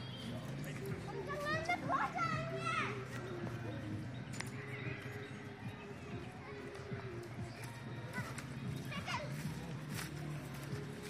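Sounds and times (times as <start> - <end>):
children playing and shouting: 0.0 - 11.0.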